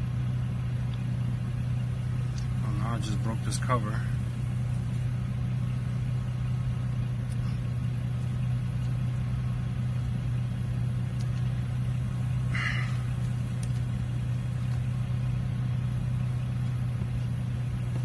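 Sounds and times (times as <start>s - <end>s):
steady low motor hum: 0.0s - 18.0s.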